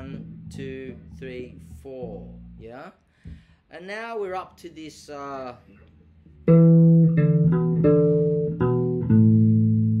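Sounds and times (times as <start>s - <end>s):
bass guitar notes: 0.0s - 3.6s, 5.8s - 10.0s.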